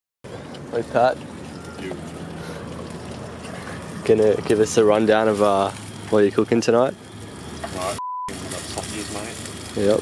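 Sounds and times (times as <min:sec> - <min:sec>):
outdoor rushing hiss: 0:02.2 - 0:10.0.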